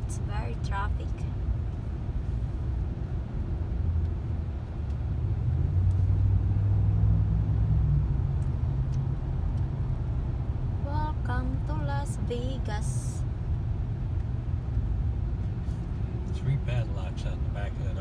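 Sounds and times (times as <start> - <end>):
highway traffic rumble: 0.0 - 18.0.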